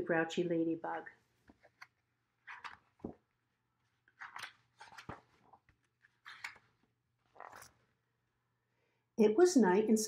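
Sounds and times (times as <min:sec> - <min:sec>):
paper pages rustling: 0:01.3 - 0:08.0.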